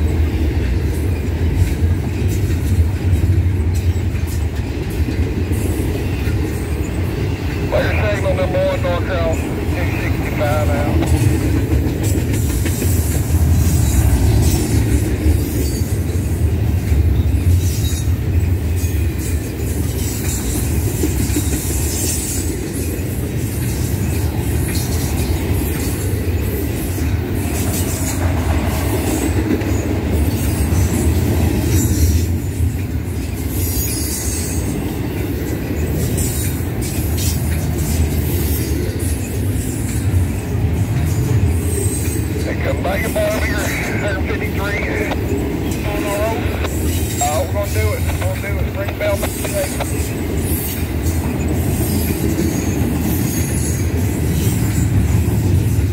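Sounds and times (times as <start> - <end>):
clickety-clack over rail joints: 0.0 - 55.9
freight train wheels rumbling: 0.0 - 55.9.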